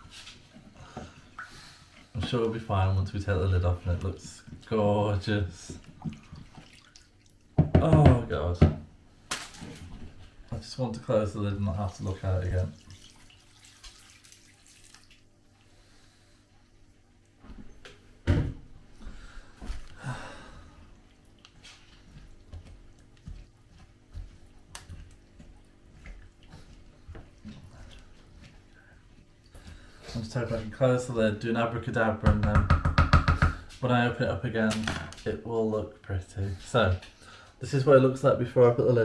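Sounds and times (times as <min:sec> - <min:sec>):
running water: 0:00.2 - 0:08.5, 0:09.4 - 0:17.3, 0:20.5 - 0:31.7.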